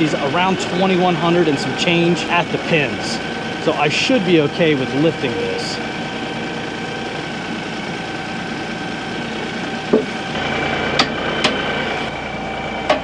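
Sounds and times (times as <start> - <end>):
diesel tractor engine idling: 0.0 - 13.0.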